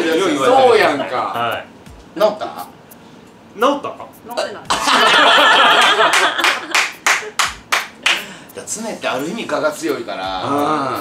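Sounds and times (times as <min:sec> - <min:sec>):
group of people laughing: 0:04.7 - 0:06.8
hand claps: 0:05.7 - 0:08.4.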